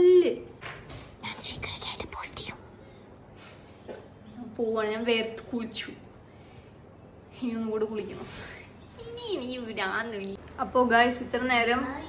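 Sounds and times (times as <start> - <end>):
woman whispering: 1.2 - 2.6.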